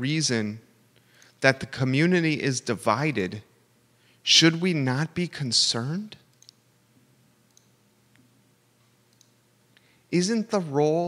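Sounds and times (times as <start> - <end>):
faint small clicks: 6.3 - 6.6, 7.5 - 8.3, 9.1 - 9.9.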